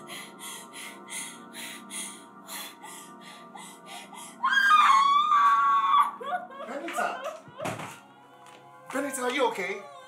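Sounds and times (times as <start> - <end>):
woman screaming in pain: 4.4 - 7.3.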